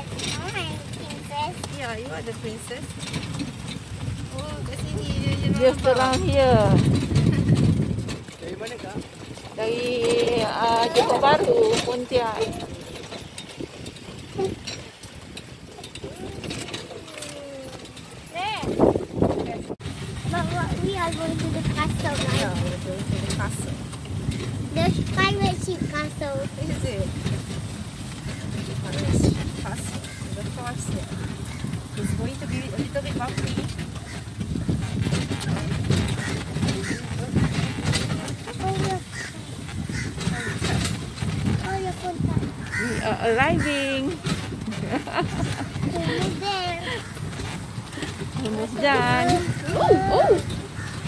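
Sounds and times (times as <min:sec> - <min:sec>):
horse-drawn carriage rolling: 0:00.0 - 0:51.0
voices in background: 0:04.0 - 0:51.0
child humming: 0:49.2 - 0:50.5
child's high call: 0:49.4 - 0:50.6.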